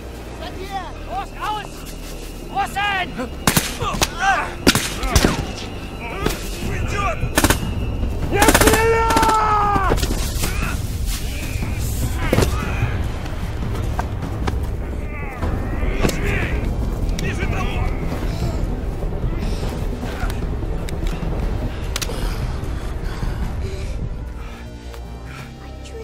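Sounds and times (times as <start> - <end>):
men shouting: 2.5 - 7.4, 8.2 - 13.3, 14.8 - 20.5
single gunshots: 3.4 - 5.5
man yelling: 8.3 - 9.9
low rumble: 9.5 - 24.6.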